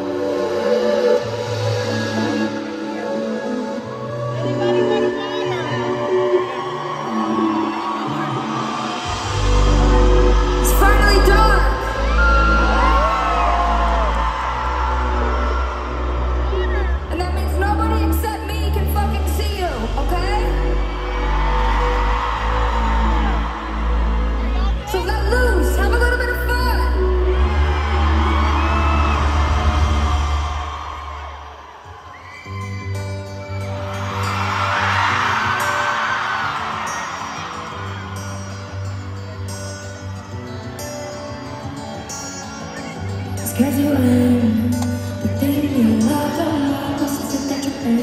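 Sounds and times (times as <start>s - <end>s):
song with sustained chord: 0.0s - 30.8s
crowd noise: 0.0s - 48.0s
deep bass drone: 9.1s - 18.1s.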